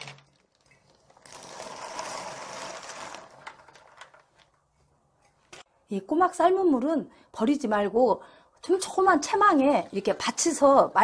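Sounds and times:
pot boiling and rattling: 0.0 - 4.6.

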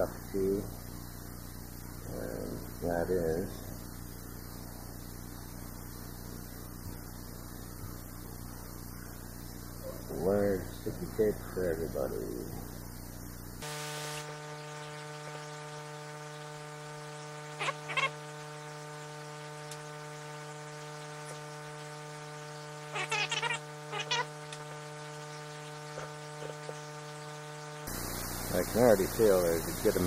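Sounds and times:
electrical buzzing hum: 0.0 - 30.0.

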